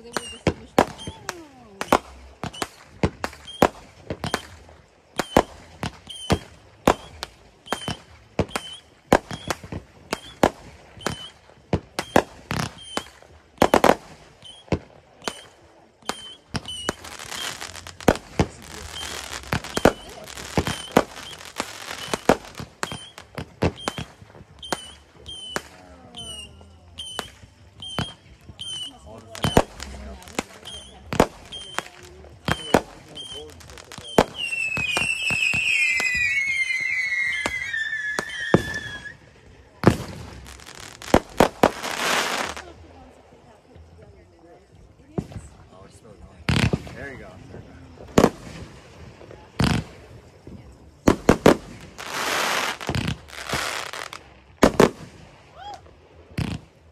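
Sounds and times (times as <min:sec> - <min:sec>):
falling firework whistle: 0:00.0 - 0:04.6, 0:05.2 - 0:11.4, 0:12.0 - 0:39.3, 0:51.2 - 0:56.6
fireworks bangs and pops: 0:00.0 - 0:43.0, 0:44.9 - 0:56.9
fireworks crackling: 0:00.0 - 0:56.9.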